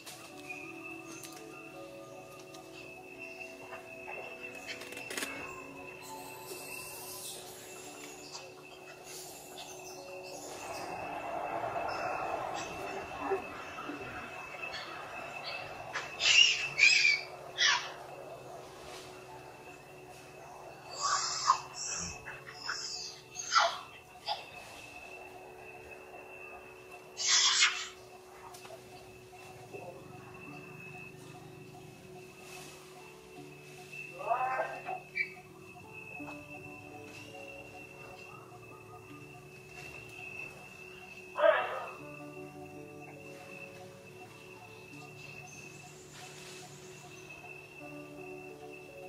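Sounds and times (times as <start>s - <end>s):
steady high-pitched tone: 0.0s - 41.4s
macaque squealing: 12.6s - 18.0s, 20.9s - 24.5s, 27.2s - 28.1s, 34.2s - 35.4s.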